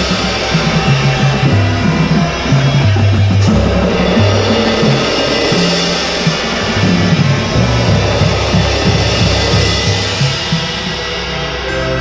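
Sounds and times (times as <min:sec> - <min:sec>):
low bass notes: 0:00.0 - 0:12.0
suspended cymbal roll: 0:00.0 - 0:12.0.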